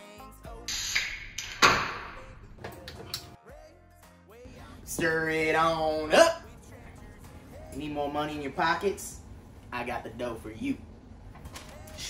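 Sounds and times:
background music: 0.0 - 9.4
beer can pop: 0.7 - 3.2.

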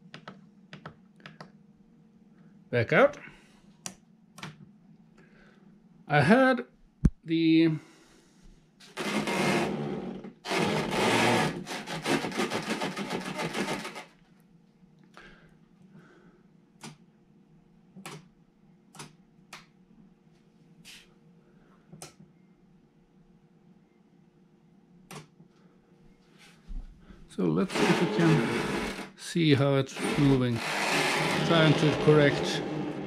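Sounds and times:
faint steady hum: 0.0 - 8.9, 14.2 - 27.8
small servos buzzing: 8.9 - 14.1, 27.7 - 29.2, 29.9 - 33.0.

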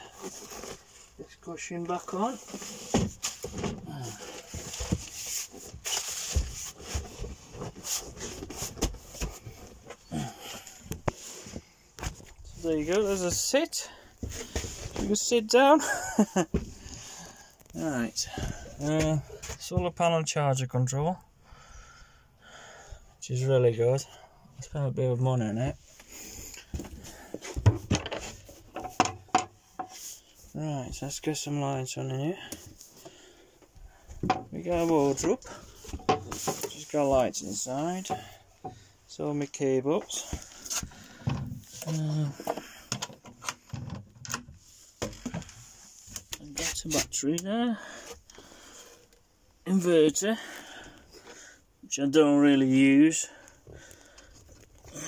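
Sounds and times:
thumps and knocks: 26.8 - 30.0, 34.1 - 34.5, 35.2 - 36.8.

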